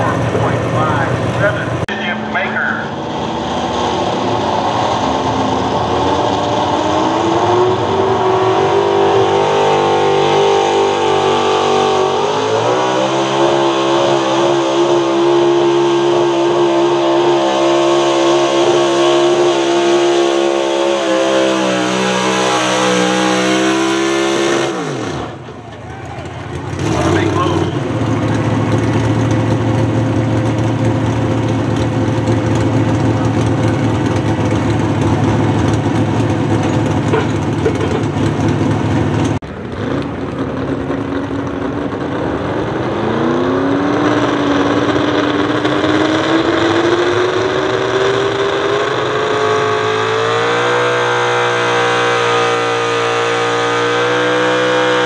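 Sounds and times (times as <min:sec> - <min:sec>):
engine idling: 0:00.0 - 0:03.0, 0:25.2 - 0:43.0
truck engine at full throttle: 0:00.0 - 0:55.0.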